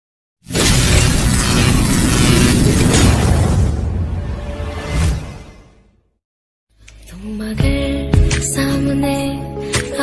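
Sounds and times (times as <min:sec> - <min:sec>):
loud crash of noise: 0:00.5 - 0:05.3.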